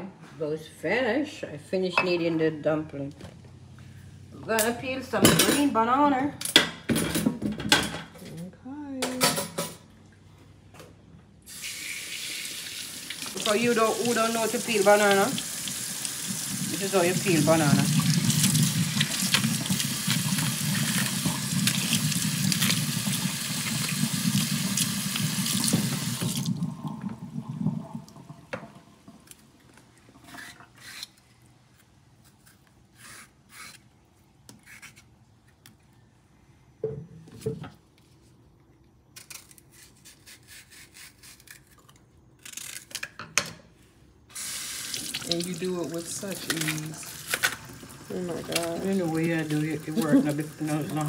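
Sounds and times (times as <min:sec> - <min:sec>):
kitchen faucet running into sink: 0:11.6 - 0:29.1, 0:44.4 - 0:51.0
knife peeling banana: 0:30.3 - 0:35.8, 0:39.1 - 0:43.1.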